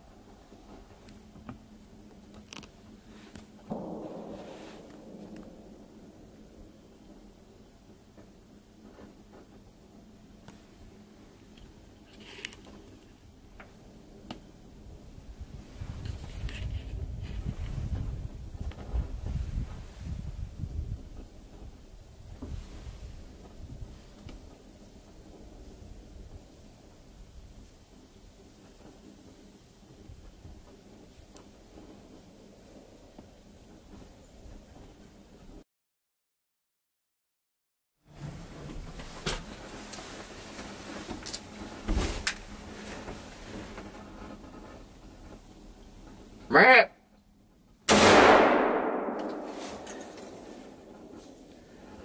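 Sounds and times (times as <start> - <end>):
wind buffeting microphone: 0.0 - 12.2, 12.8 - 35.6
faint rustles: 0.0 - 35.6, 38.1 - 46.5, 48.6 - 52.0
heavy thump: 3.7 - 7.3.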